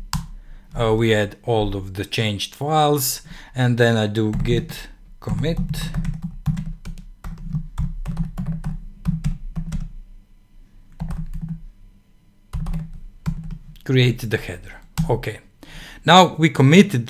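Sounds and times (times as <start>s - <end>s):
typing on computer keyboard: 5.3s - 9.9s, 10.9s - 11.6s, 12.6s - 13.6s.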